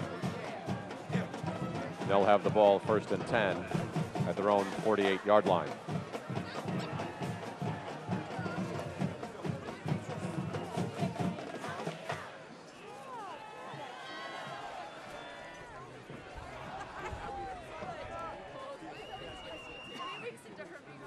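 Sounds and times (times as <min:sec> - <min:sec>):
marching band drums: 0:00.0 - 0:12.4
crowd voices and shouts: 0:00.0 - 0:21.0.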